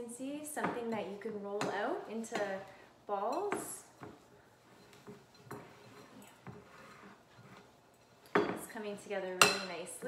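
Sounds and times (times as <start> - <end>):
spoon scraping in glass bowl: 4.6 - 8.4.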